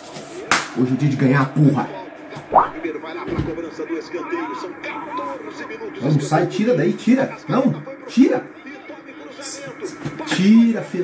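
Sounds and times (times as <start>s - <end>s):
tv commentator talking: 0.8s - 11.0s.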